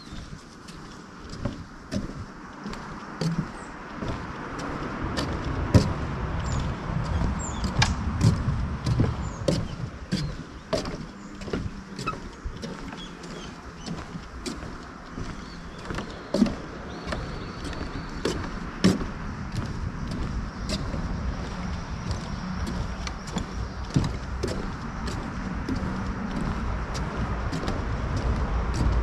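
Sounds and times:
footsteps on a path: 0.0s - 29.0s
low rumble: 2.2s - 12.6s, 16.6s - 29.0s.

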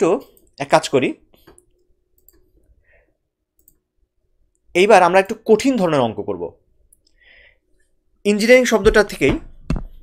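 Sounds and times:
person speaking: 0.0s - 1.7s, 4.6s - 7.0s, 8.2s - 9.5s
faint clicks: 3.6s - 3.8s.

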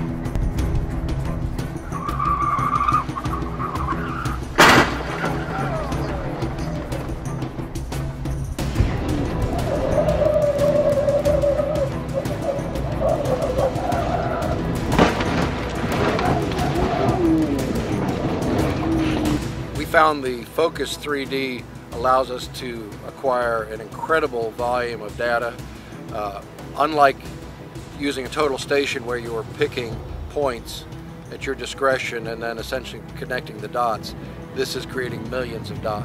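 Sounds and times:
music playing: 0.0s - 36.0s
tire squeal: 1.8s - 6.8s, 9.3s - 19.6s
wreckage scraping on pavement: 1.8s - 7.6s, 9.2s - 20.1s
loud crash of impact: 4.6s - 5.5s, 14.8s - 16.6s.

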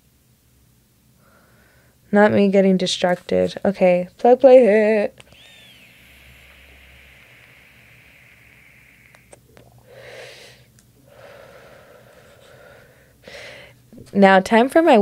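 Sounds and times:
vape pen inhaling hiss: 5.2s - 13.6s
breathy exhales: 5.3s - 13.8s.

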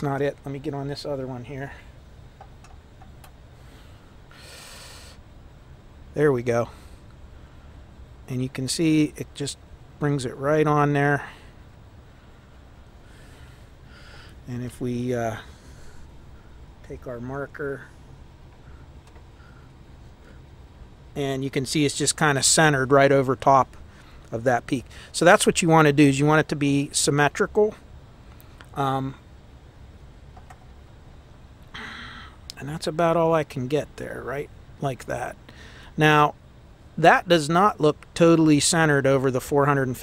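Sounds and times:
low steady hum: 0.0s - 40.0s
faint breath through nose: 3.5s - 5.3s, 12.2s - 14.4s, 35.5s - 36.0s.

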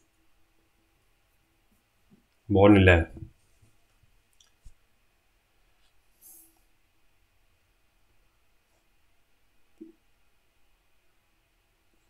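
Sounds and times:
man speaking: 2.5s - 3.3s.

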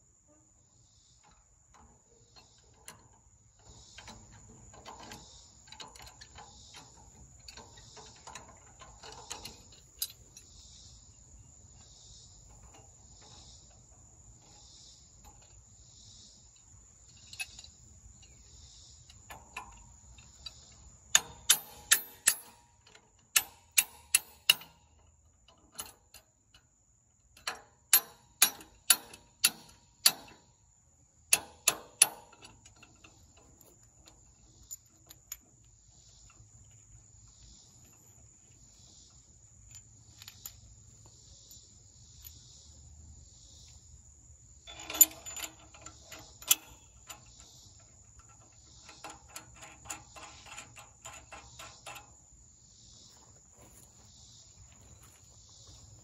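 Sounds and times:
insects calling: 0.0s - 56.0s
sharp metallic clicks: 16.5s - 26.7s, 27.3s - 30.6s, 31.3s - 36.9s, 44.6s - 52.3s.

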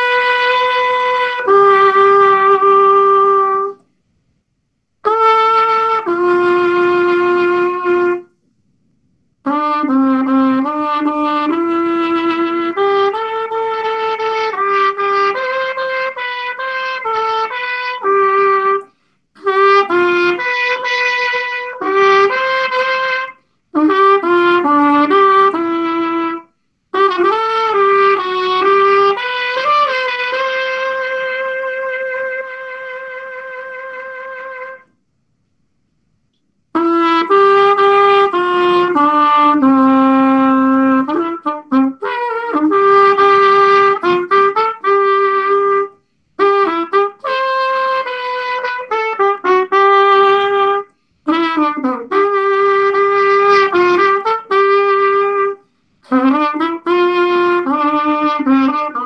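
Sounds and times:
solo trumpet melody: 0.0s - 3.9s, 5.0s - 35.1s, 36.3s - 59.0s.

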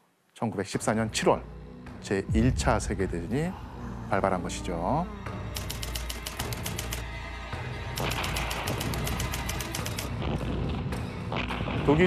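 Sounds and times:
background music with low drone: 0.4s - 12.0s
rapid sharp clicks: 5.5s - 7.0s, 8.0s - 10.1s.

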